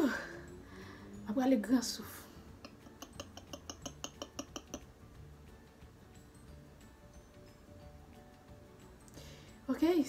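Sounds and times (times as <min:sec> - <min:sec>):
stick clicking against cup: 0:03.0 - 0:04.9.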